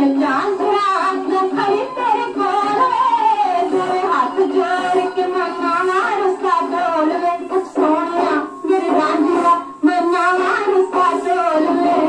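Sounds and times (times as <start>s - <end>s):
instrumental accompaniment: 0.0s - 12.0s
woman singing folk song: 0.0s - 12.0s.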